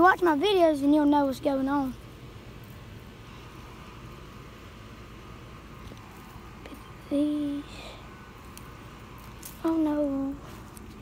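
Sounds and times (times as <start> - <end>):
light hiss: 1.0 - 11.0.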